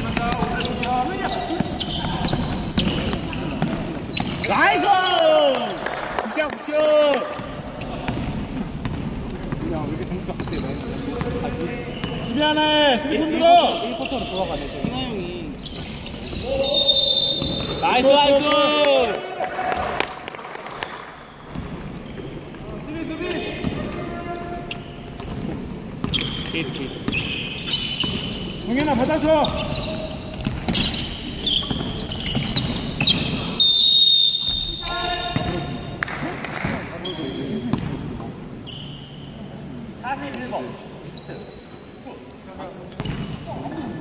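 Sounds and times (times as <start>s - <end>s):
sneakers squeaking: 0.0s - 5.4s, 7.2s - 18.6s, 19.6s - 44.0s.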